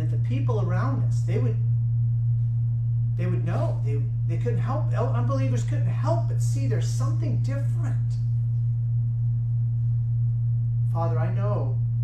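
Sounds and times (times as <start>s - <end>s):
man talking: 0.0s - 1.6s, 3.2s - 8.2s, 10.9s - 11.8s
low electrical hum: 0.0s - 12.0s.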